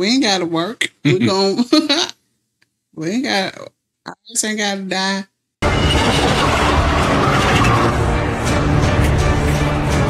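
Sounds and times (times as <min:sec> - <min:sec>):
rumbling roar of sound effects: 0:05.6 - 0:08.2.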